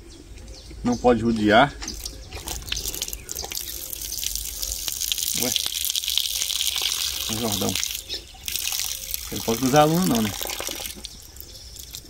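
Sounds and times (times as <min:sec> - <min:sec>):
steady high hiss: 0:00.8 - 0:12.0.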